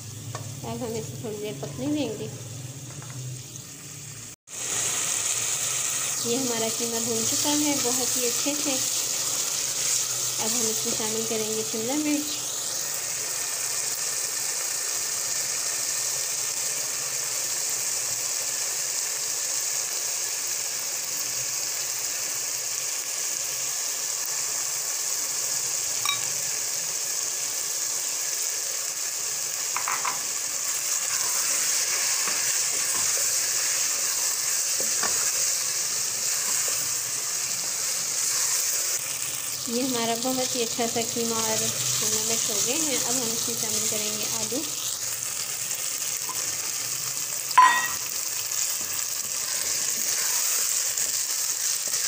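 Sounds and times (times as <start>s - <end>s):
food sizzling in a pot: 0.0s - 52.0s.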